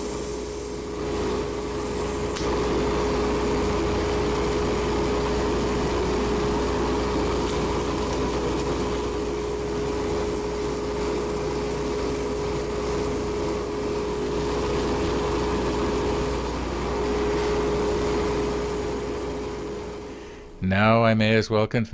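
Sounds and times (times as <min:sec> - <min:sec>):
wood lathe humming: 0:00.0 - 0:20.6.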